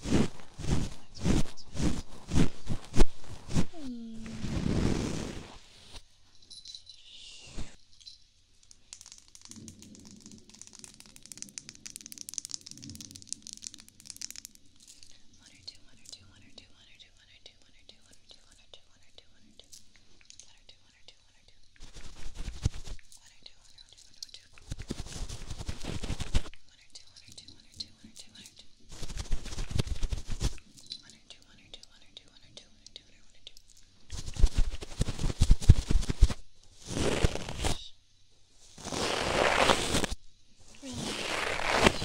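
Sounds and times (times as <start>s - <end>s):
brush bristles on microphone: 0.0s - 6.0s, 21.8s - 23.1s, 24.6s - 26.5s, 28.9s - 30.7s, 34.1s - 37.8s, 38.7s - 42.0s
brush sweeping over microphone: 0.0s - 6.0s, 34.1s - 37.8s, 38.7s - 40.2s, 40.8s - 42.0s.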